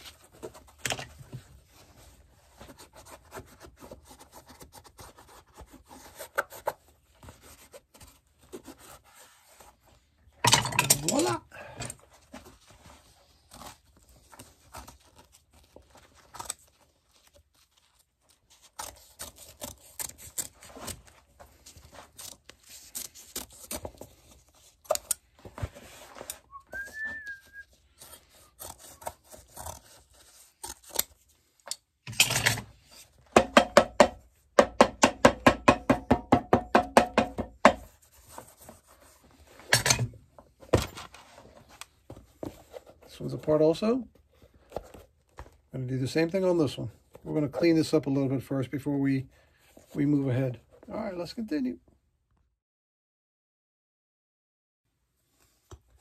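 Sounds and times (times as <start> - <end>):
knife cutting and scraping canvas: 12.2 - 26.5, 27.4 - 31.4.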